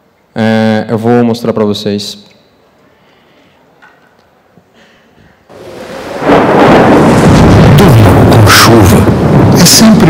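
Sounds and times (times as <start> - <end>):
heavy rain: 5.5 - 10.0
thunder: 5.5 - 10.0.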